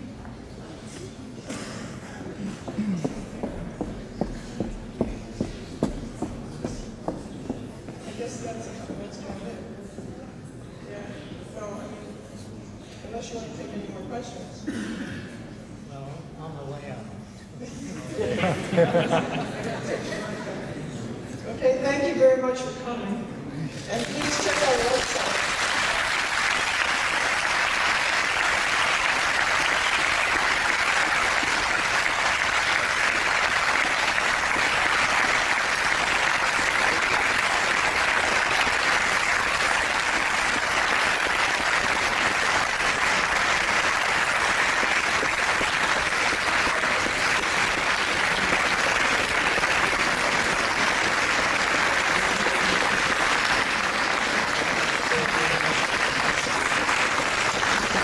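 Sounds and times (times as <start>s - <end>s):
large audience applauding: 23.9s - 58.0s.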